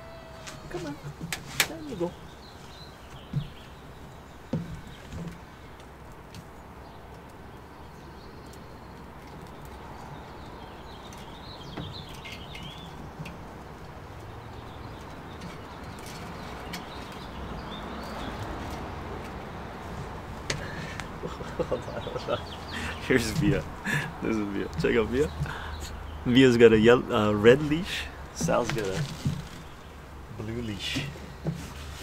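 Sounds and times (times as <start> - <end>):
small birds chirping: 0.0 - 32.0
handling clicks and knocks: 8.4 - 26.0, 27.6 - 32.0.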